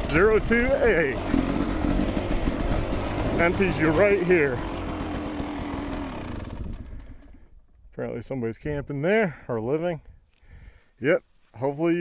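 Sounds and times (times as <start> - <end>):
dirt bike engine running: 0.0 - 7.8.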